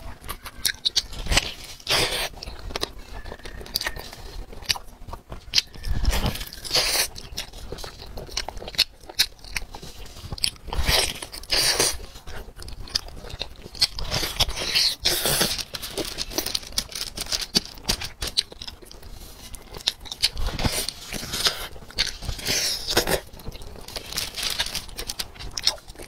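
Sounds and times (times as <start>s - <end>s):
biting and chewing chicken: 0.0s - 26.0s.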